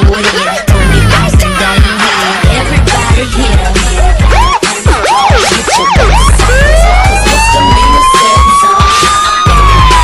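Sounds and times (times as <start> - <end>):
hip hop beat with bass: 0.0 - 10.0
siren rising in pitch: 4.2 - 10.0.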